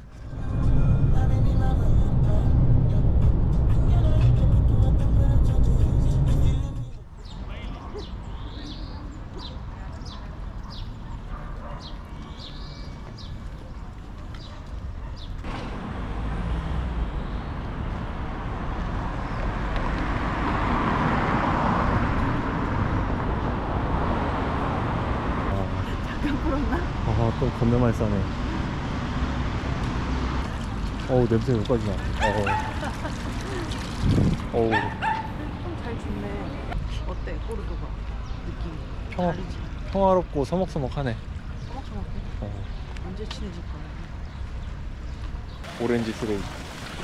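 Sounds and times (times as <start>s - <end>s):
small birds chirping: 7.0s - 15.5s, 30.4s - 46.4s
vehicle rushing by: 15.5s - 26.0s, 26.6s - 36.8s.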